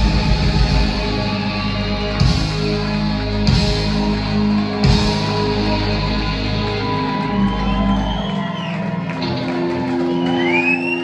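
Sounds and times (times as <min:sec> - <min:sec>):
crowd shouting and whooping: 0:00.0 - 0:11.0
live rock band: 0:00.0 - 0:11.0
rising whistle: 0:10.0 - 0:11.0.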